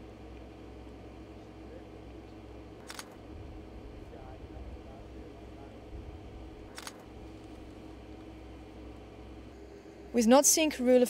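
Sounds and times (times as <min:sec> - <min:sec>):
low steady hum: 0:00.0 - 0:11.0
camera shutter clicking: 0:02.8 - 0:03.2, 0:06.7 - 0:07.1.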